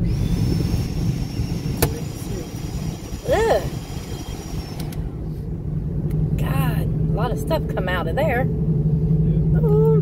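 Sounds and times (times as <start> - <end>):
faint high whine: 0.0 - 5.4
car interior low rumble: 0.0 - 10.0.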